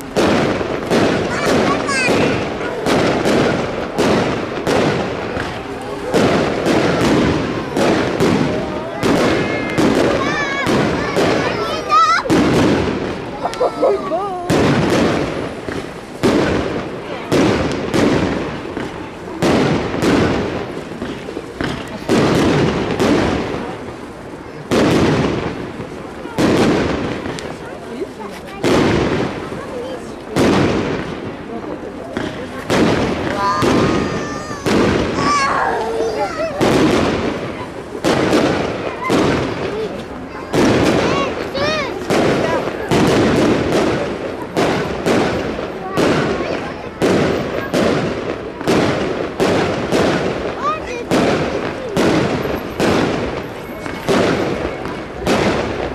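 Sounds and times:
firework bangs: 0.0s - 55.9s.

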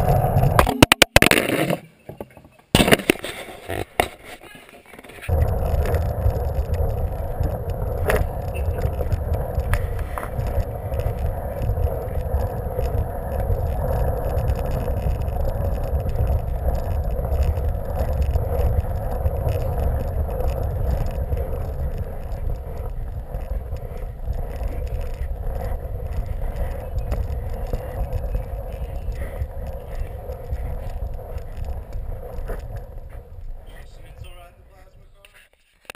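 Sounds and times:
ride-on toy rolling on floor: 0.0s - 4.1s, 4.9s - 35.0s.

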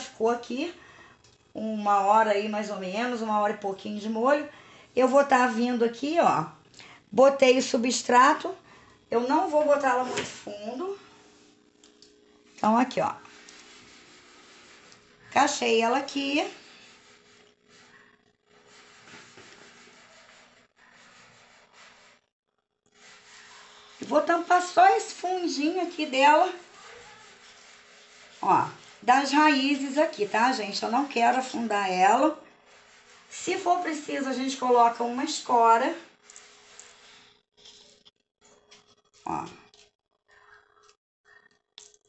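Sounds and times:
faint steady hum: 0.0s - 19.7s
hands scraping gritty potting mix: 12.6s - 22.2s, 23.0s - 37.3s.

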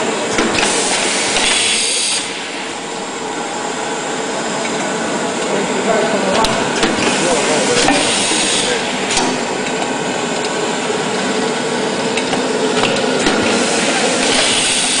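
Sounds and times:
laminator running: 0.0s - 15.0s
loud hiss: 0.6s - 2.5s, 7.1s - 9.0s, 13.5s - 15.0s.

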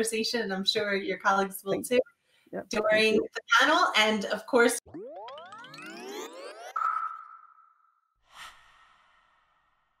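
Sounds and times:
rising synthetic sweep: 4.8s - 8.6s.

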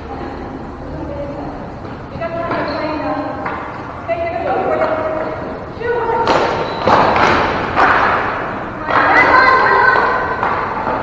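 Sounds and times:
hockey sticks and ball thumping: 6.2s - 11.0s.

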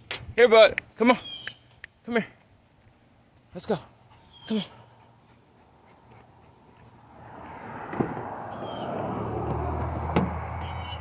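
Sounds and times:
vehicle passing by: 5.1s - 11.0s.

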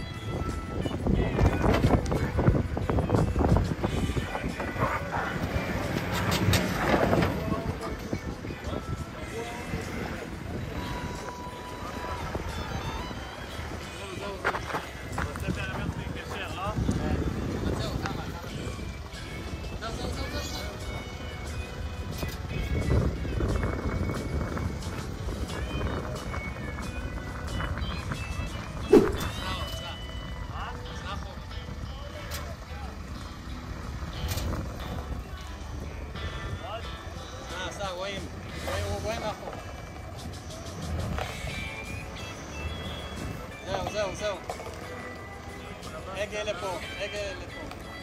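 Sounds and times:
music: 0.0s - 48.0s
vehicle engine rumble: 0.0s - 48.0s.

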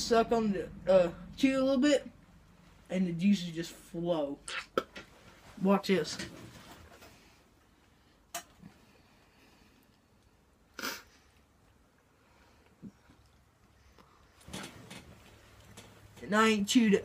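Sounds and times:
man spitting: 10.7s - 11.2s.

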